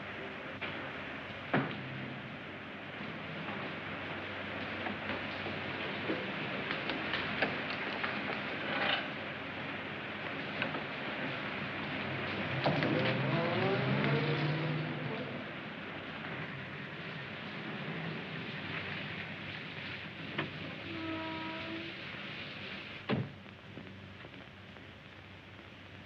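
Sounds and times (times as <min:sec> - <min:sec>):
film soundtrack hiss: 0:00.0 - 0:26.0.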